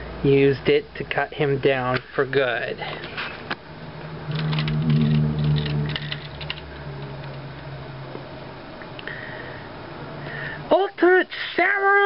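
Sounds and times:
steady low hum: 0.0 - 10.7
plastic toy parts clicking: 4.3 - 7.4.

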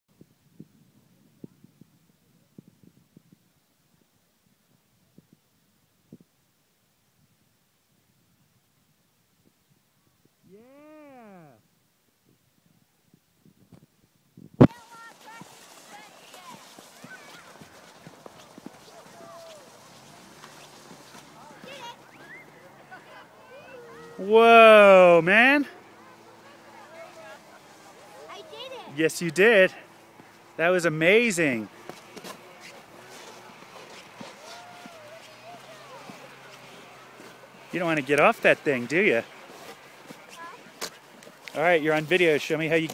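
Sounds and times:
distant voices chattering: 14.7 - 42.9.

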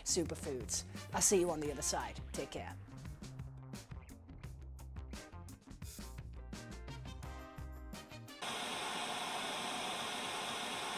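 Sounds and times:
background music: 0.0 - 8.4.

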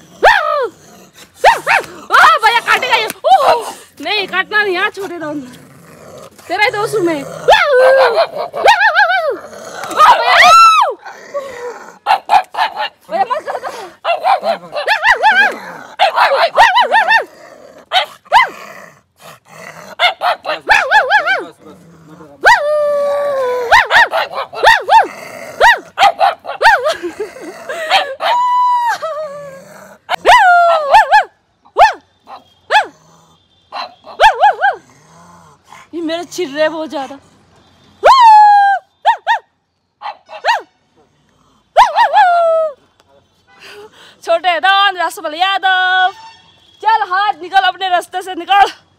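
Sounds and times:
small dog barking and yapping: 0.2 - 0.7, 1.4 - 3.8, 7.4 - 10.9, 12.0 - 18.6, 19.9 - 21.6, 23.6 - 26.9, 30.1 - 33.0, 33.7 - 34.8, 39.0 - 40.7.

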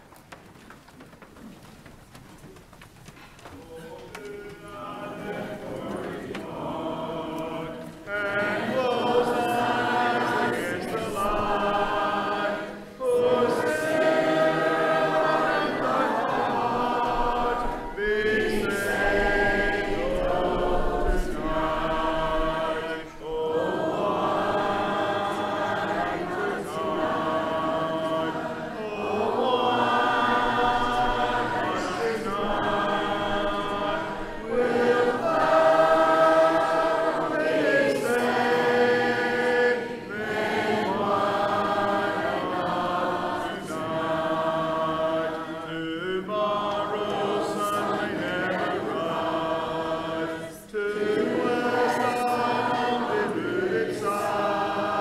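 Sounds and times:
congregation singing a hymn: 3.4 - 55.0.

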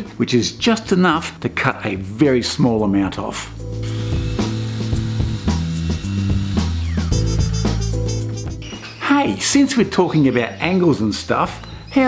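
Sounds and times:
background music: 0.0 - 12.0
miter saw cutting wood: 3.8 - 7.8.

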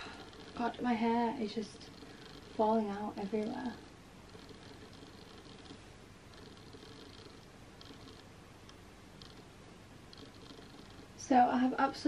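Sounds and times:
hair rustling: 0.0 - 8.3.

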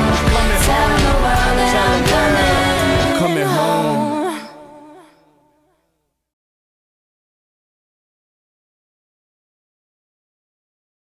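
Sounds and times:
held wavering vocal note: 0.0 - 5.6.

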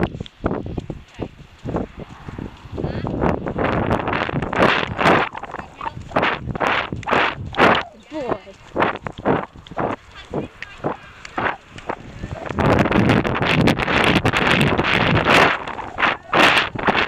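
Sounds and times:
hooves on soft ground: 0.0 - 17.0
wind noise on microphone: 0.0 - 17.0.

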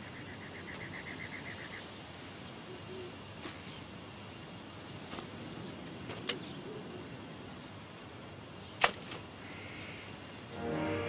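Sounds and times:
sharp snap: 8.8 - 9.2.

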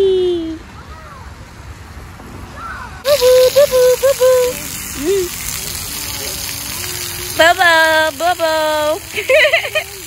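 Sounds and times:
fountain jets splashing on concrete: 3.0 - 10.0.

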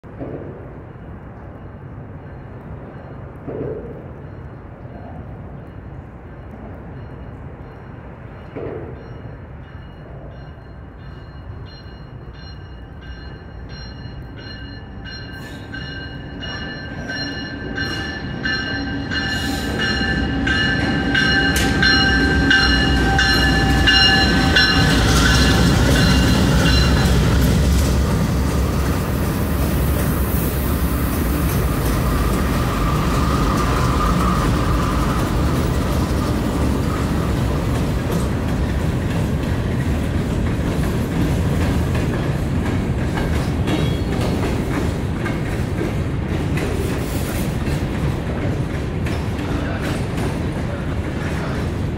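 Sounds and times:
diesel locomotives rumbling: 0.0 - 51.9
train wheels clickety-clack: 0.0 - 51.9.

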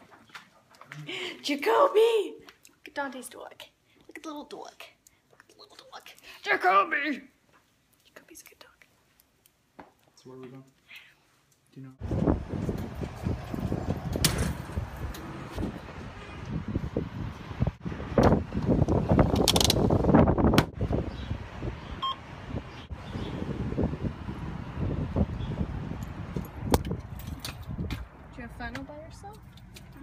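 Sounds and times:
keypad button beep: 22.0 - 22.2.

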